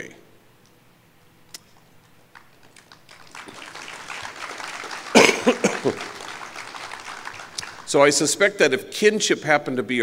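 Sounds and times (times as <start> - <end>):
person coughing loudly: 5.1 - 6.0.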